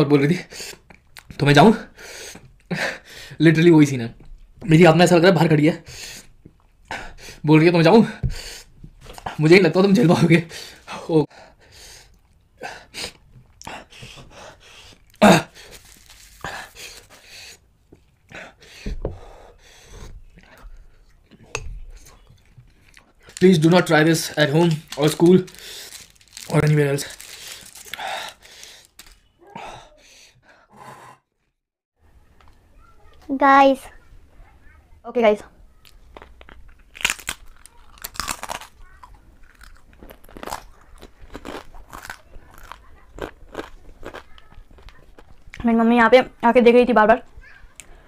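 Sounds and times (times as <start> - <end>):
person breathing: 1.9 - 3.4, 5.8 - 6.3, 8.2 - 8.8, 10.5 - 17.7, 18.3 - 21.1, 25.5 - 26.2, 27.1 - 31.4
person crunching chips: 15.0 - 17.2, 22.7 - 29.3, 35.9 - 45.5
chewing: 20.3 - 23.4, 35.8 - 45.6
mouth noises eating: 35.8 - 45.6.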